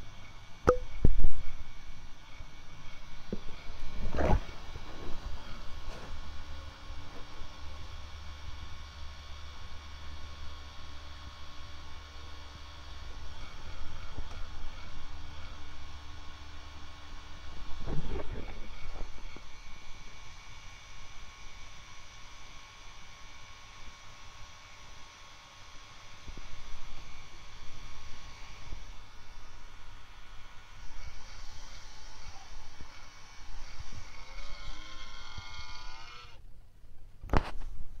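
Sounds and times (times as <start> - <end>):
projector whine over low hum: 0.0 - 38.0.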